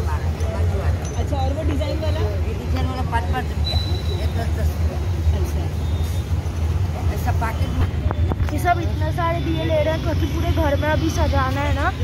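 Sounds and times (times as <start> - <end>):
people talking indistinctly: 0.0 - 12.0
street traffic rumble: 0.0 - 12.0.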